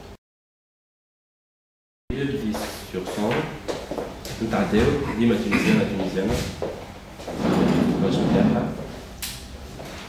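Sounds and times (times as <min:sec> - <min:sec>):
man speaking: 0:04.4 - 0:06.5.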